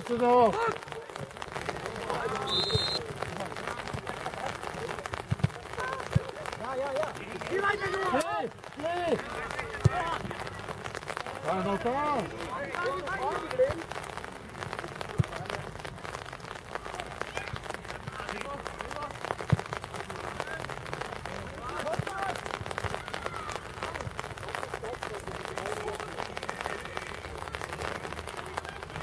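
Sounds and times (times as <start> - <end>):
rain pattering: 0.0 - 29.0.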